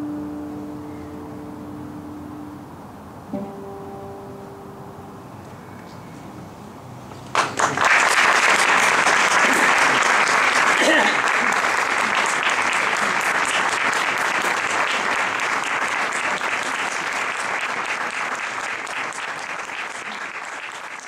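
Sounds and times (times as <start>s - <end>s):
audience applauding: 7.3s - 21.0s.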